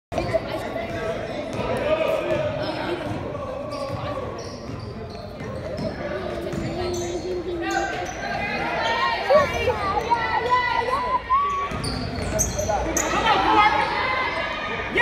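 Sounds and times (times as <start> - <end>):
basketball bouncing on wooden court: 3.8 - 7.4, 11.7 - 12.6.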